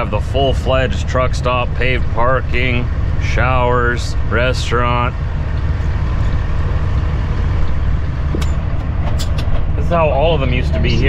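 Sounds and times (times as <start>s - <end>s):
diesel truck engine rumbling: 0.0s - 11.0s.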